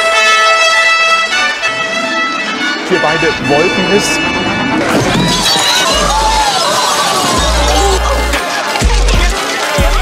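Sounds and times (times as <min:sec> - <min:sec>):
music with deep bass: 0:04.2 - 0:10.0.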